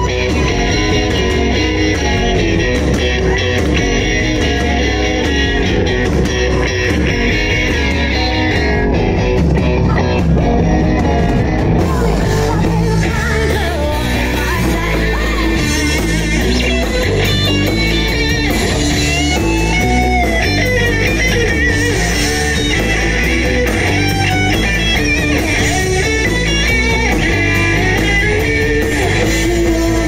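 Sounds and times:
electric guitar lead lines: 0.0s - 30.0s
live rock band instrumental: 0.0s - 30.0s.

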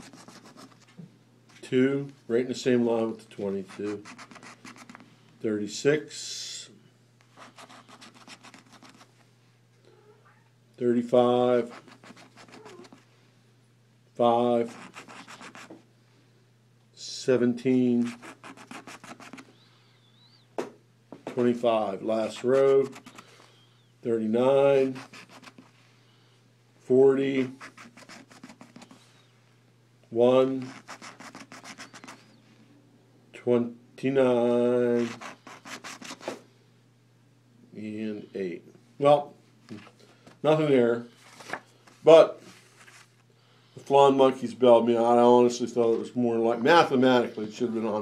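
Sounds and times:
coin scratching a ticket: 0.0s - 0.8s, 3.7s - 5.0s, 7.4s - 9.1s, 11.6s - 13.0s, 14.6s - 15.7s, 18.0s - 19.5s, 24.8s - 25.6s, 27.5s - 28.9s, 30.6s - 32.2s.

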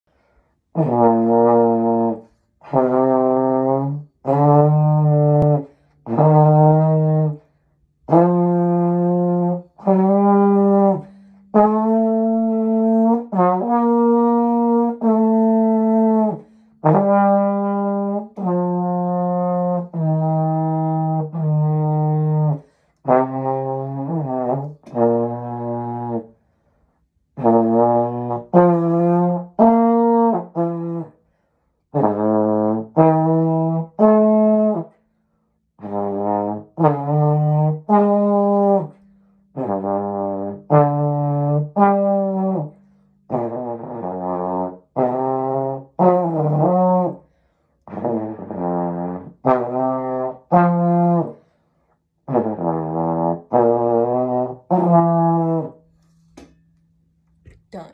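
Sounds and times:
solo trombone melody: 0.1s - 56.0s.

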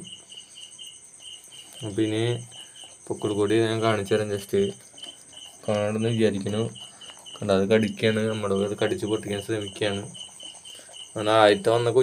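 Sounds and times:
insects chirping: 0.0s - 12.0s.

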